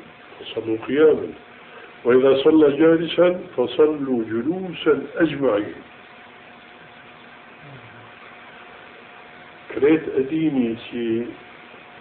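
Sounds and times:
cassette tape hiss: 0.0 - 12.0.

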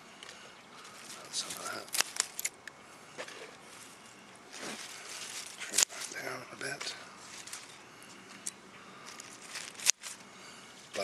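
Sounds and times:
lettuce leaves rustling: 3.2 - 10.3.

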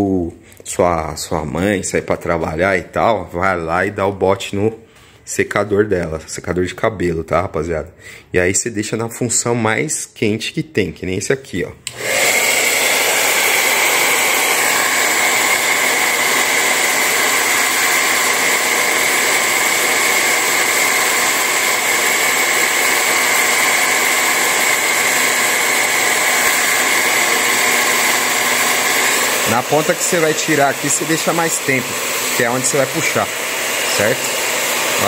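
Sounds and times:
hair dryer running: 11.8 - 35.0.

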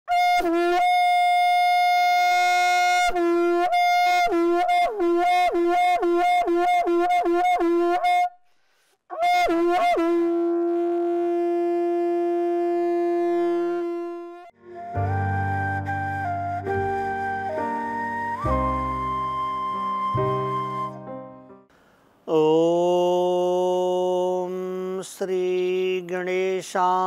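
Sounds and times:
conch shell horn blown: 0.1 - 8.4, 9.1 - 17.6.

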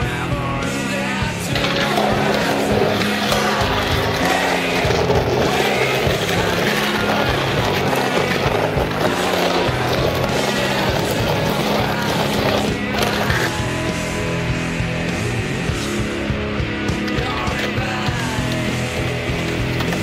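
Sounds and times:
loud backing music: 0.0 - 20.0
skateboard rolling on concrete: 0.0 - 20.0.

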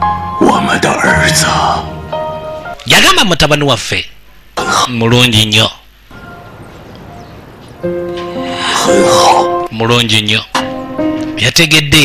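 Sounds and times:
man speaking: 8.8 - 10.6.

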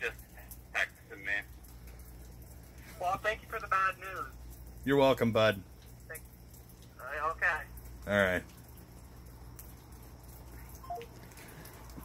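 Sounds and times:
steady low hum: 0.0 - 12.0
smartphone beeps falling in pitch: 10.8 - 11.1.

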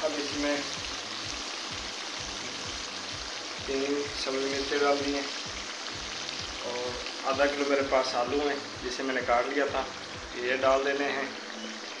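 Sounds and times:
masala sizzling and bubbling: 0.0 - 12.0.

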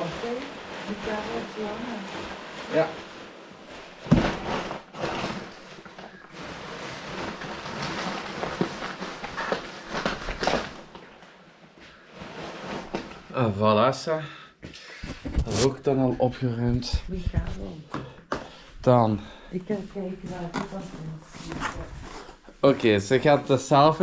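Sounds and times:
nylon bag rustling and crinkling: 0.0 - 11.2.

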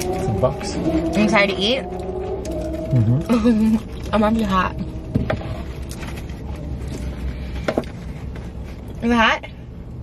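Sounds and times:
air conditioning running: 0.0 - 10.0
car engine idling: 0.0 - 10.0.

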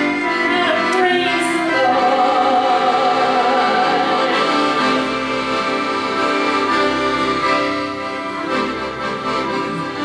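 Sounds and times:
accordion: 0.0 - 10.0.

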